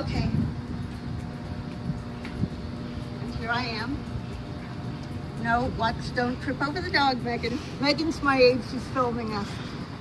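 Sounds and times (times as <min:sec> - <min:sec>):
faint constant hum: 0:00.0 - 0:10.0
low outdoor rumble: 0:00.0 - 0:10.0.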